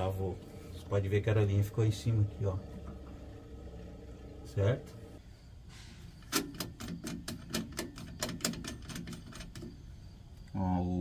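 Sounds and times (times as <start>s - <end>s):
people talking: 0.0s - 2.8s, 4.4s - 5.0s, 10.6s - 11.0s
sharp metallic clicks of coupling: 6.2s - 9.7s.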